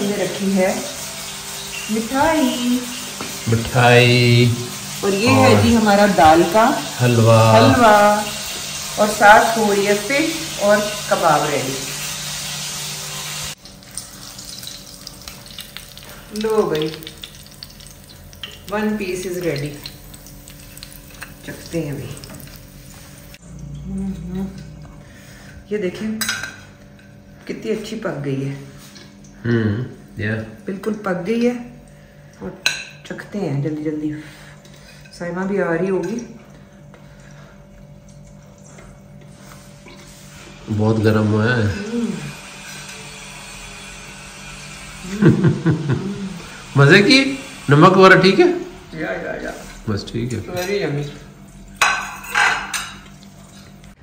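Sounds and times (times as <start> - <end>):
fish frying in oil: 0.0 - 23.8, 35.9 - 54.0
woman speaking: 1.9 - 2.9, 5.0 - 8.4, 9.0 - 11.9.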